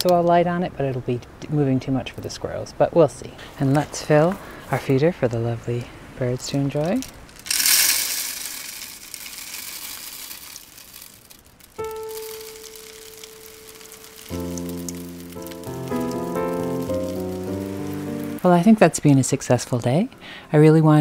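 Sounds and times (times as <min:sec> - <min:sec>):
birdseed pouring into plastic feeder: 0:07.4 - 0:14.7
gentle instrumental christmas music: 0:11.8 - 0:21.0.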